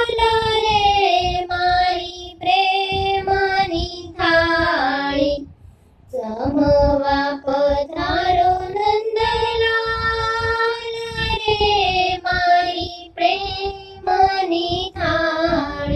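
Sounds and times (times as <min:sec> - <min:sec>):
high voice singing devotional song: 0:00.0 - 0:15.9.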